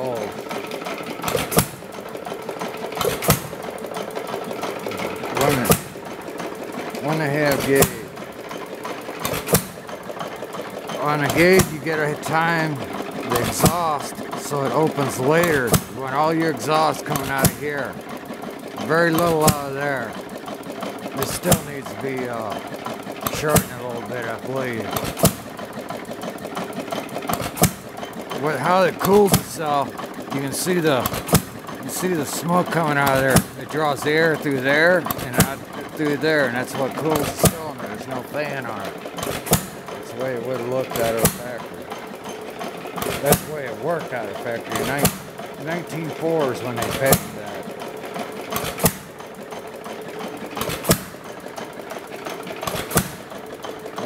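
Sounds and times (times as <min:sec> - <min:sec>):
engine firing: 0:00.0 - 0:54.0
light mechanical clatter: 0:00.0 - 0:54.0.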